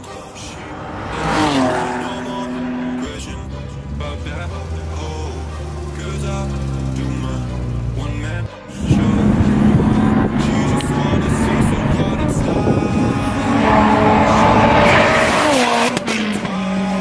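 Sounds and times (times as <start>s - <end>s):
race car passing at speed: 0.0s - 5.1s, 8.8s - 17.0s
music playing: 0.0s - 17.0s
car engine at low revs: 0.4s - 17.0s.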